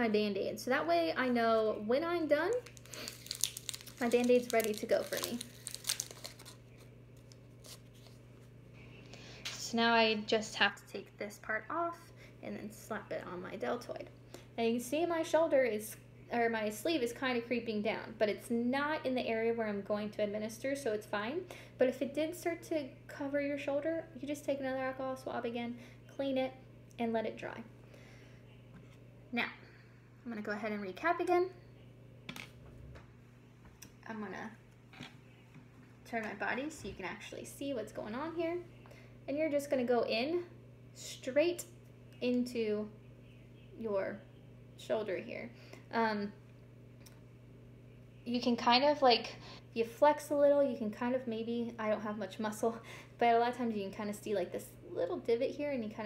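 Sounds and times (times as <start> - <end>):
paper wrapper crackling: 2.4 - 8.5
faint paper rustles: 2.5 - 8.6.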